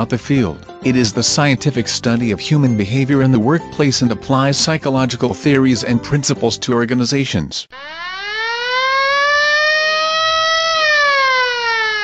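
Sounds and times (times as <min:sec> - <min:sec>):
air-raid siren wailing: 0:07.7 - 0:12.0.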